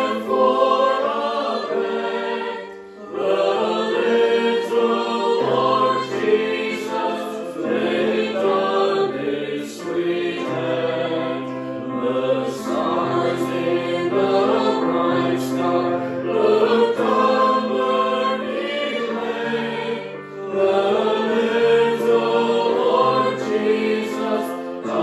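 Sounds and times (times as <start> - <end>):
electric keyboard accompaniment: 0.0 - 25.0
mixed choir singing a hymn: 0.0 - 25.0.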